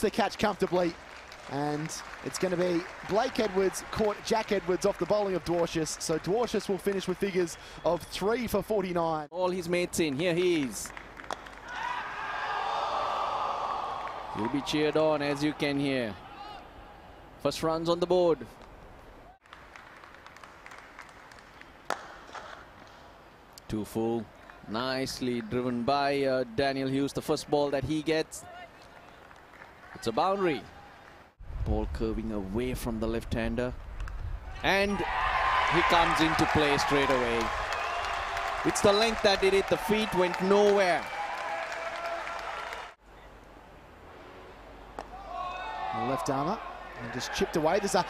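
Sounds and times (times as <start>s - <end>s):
scattered clapping: 0.4s - 7.4s, 10.0s - 11.8s, 19.4s - 22.6s, 28.7s - 30.2s, 36.1s - 43.0s
bat hitting ball: 21.9s - 22.9s, 44.9s - 45.3s.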